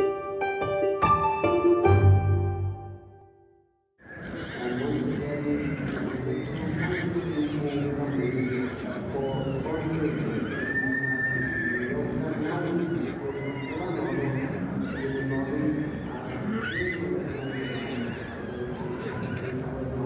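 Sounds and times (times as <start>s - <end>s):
horses neighing: 4.0s - 20.0s.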